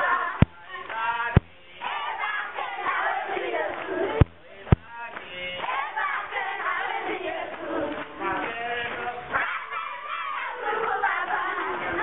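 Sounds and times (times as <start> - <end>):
children shouting and cheering: 9.3 - 12.0.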